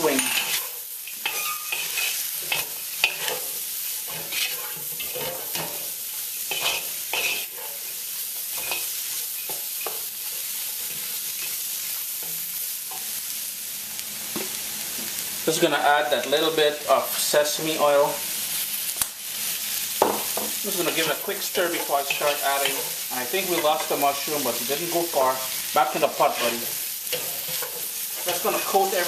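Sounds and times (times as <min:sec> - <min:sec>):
spatula scraping and clacking on wok: 0:00.0 - 0:13.1, 0:20.0 - 0:29.0
vegetables sizzling in a wok: 0:00.0 - 0:29.0.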